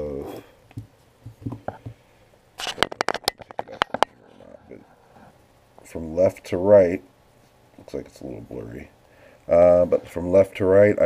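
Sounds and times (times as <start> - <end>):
clicks and rustles: 2.6 - 4.5.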